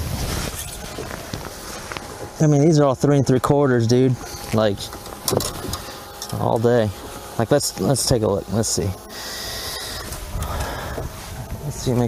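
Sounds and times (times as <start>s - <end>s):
steady noisy wash: 0.0s - 12.0s.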